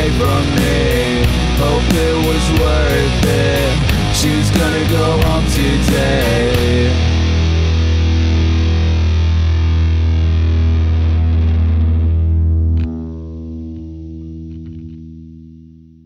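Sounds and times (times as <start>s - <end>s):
distorted rock chord ringing: 0.0s - 16.0s.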